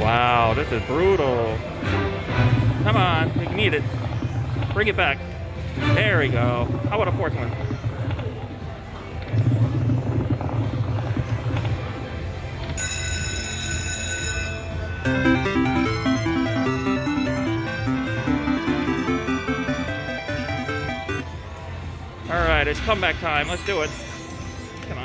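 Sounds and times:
slot machine reel spin: 2.0s - 8.4s, 12.9s - 21.2s, 22.4s - 25.0s
low rumble: 2.1s - 12.6s
stepping melodic tones: 12.8s - 21.4s
bright chime: 22.8s - 25.0s.

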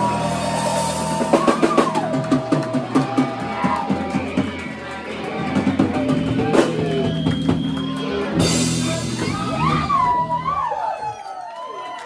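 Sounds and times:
audience whooping and cheering: 0.0s - 12.0s.

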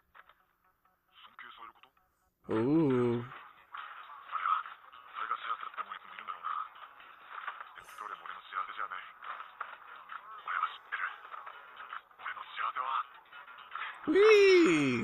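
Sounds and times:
cartoon dialogue in background: 2.5s - 3.3s, 14.1s - 15.0s.

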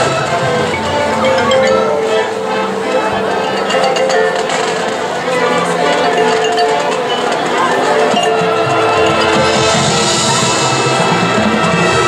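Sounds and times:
marching band playing: 0.0s - 12.0s.

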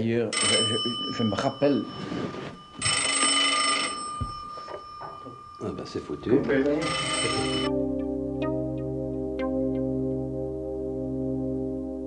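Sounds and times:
telephone bell ringing: 0.3s - 7.7s.

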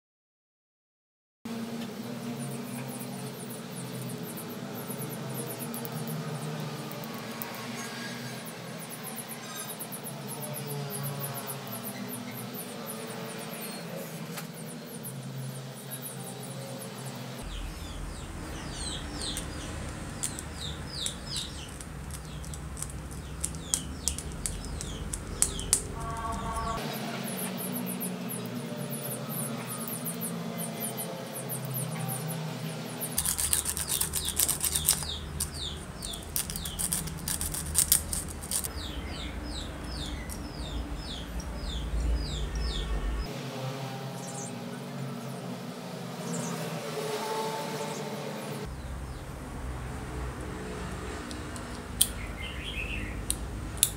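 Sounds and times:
small birds chirping: 2.0s - 43.3s, 51.6s - 53.9s
sandpaper rubbing: 33.2s - 38.7s.

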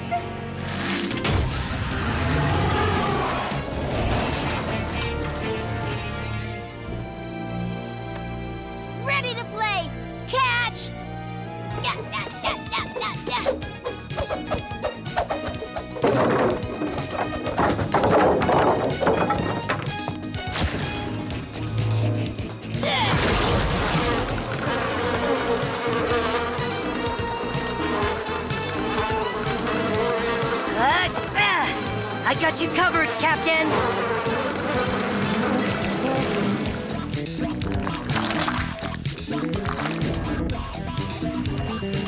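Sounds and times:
action background music: 0.0s - 42.0s
toy blocks crashing and clattering: 16.0s - 20.2s
swarm of bees buzzing: 23.6s - 37.2s.

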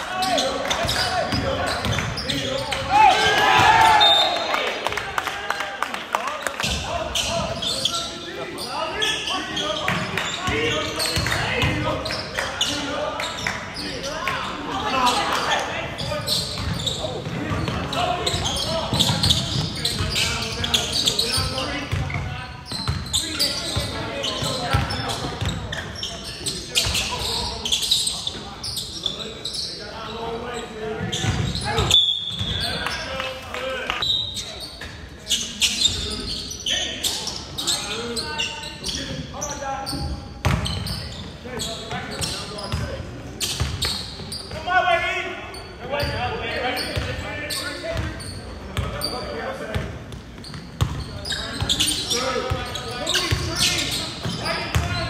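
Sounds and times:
echoing indistinct voices: 0.0s - 40.3s.

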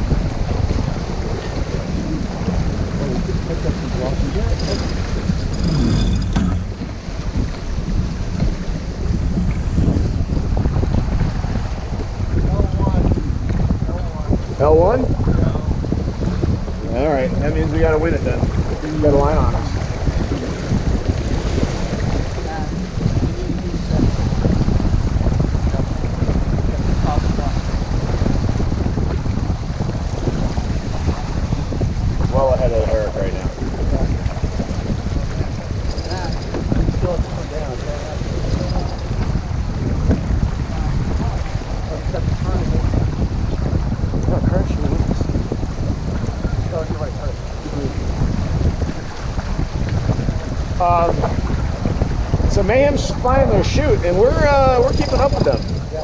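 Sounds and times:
water rushing along hull: 0.0s - 56.0s
wind buffeting microphone: 0.0s - 56.0s.

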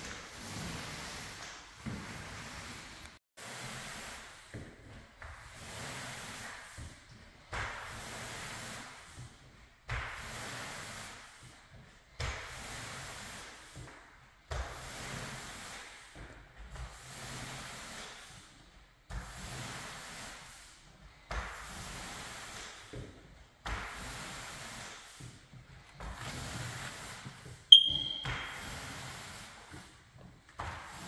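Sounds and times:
sharp click with high ring: 27.8s - 28.5s.

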